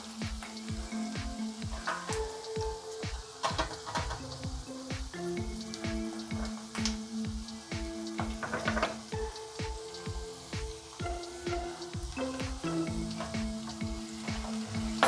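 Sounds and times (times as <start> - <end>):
background music with beat: 0.0 - 15.0
onions sizzling in oil: 0.0 - 15.0.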